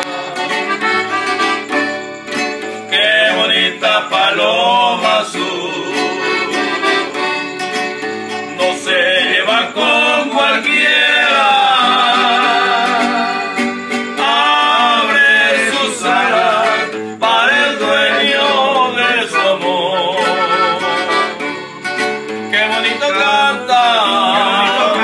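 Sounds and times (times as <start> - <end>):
accordion melody: 0.0 - 25.0
guitar playing: 0.0 - 25.0.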